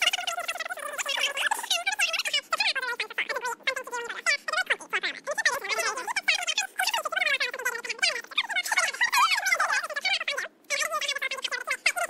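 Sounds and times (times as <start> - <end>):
fast-forwarded women's chatter: 0.0 - 12.0.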